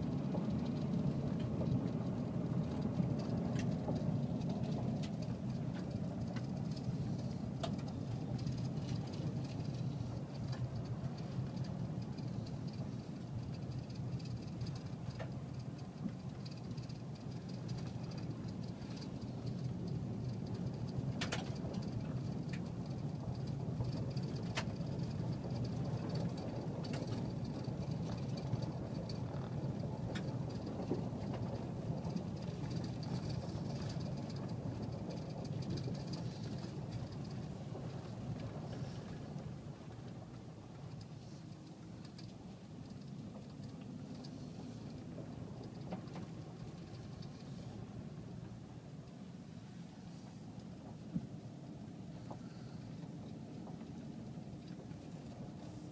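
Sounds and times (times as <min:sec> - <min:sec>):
car engine and tyre rumble: 0:00.0 - 0:55.9.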